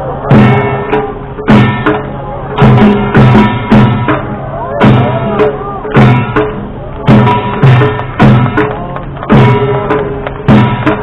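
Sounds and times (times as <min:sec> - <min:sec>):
heavy drum strokes: 0:00.0 - 0:11.0.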